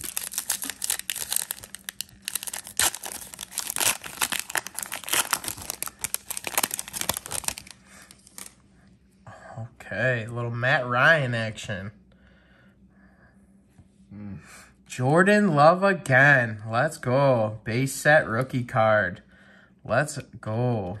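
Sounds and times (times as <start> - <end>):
foil pack tearing and crinkling: 0.0 - 8.6.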